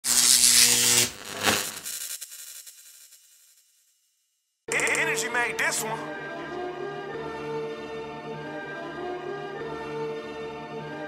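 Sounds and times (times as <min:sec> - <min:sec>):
buzzing static glitch: 0:00.0 - 0:04.1.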